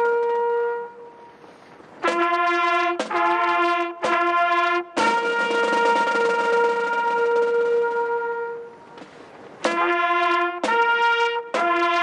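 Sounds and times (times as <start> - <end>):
trumpet holding a long note: 0.0 - 9.0, 9.6 - 12.0.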